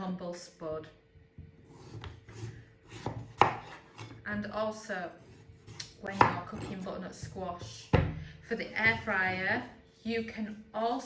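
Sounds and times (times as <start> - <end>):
knife slicing squash: 1.6 - 4.2, 5.2 - 6.9.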